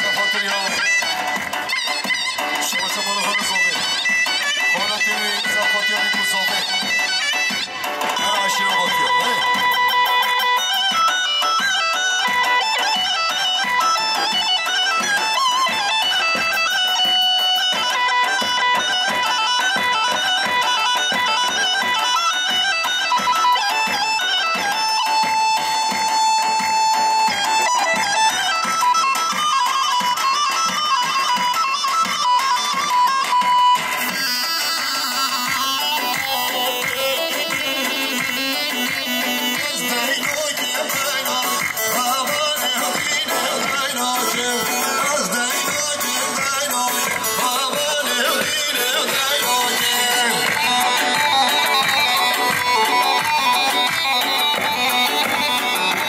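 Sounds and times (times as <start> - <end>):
driving drum beat: 0.0 - 56.0
wind instrument melody: 0.0 - 56.0.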